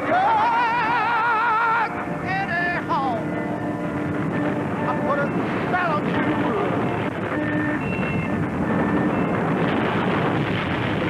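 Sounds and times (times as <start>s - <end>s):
mechanical drone over rushing noise: 0.0s - 11.0s.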